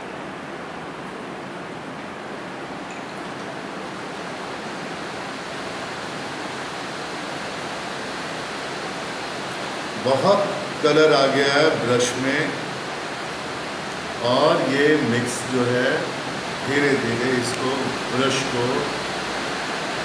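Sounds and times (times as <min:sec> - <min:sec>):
steady background hiss: 0:00.0 - 0:20.0.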